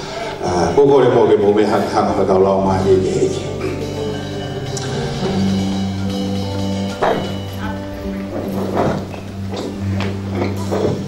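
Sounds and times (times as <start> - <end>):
backing music: 0.0 - 11.0.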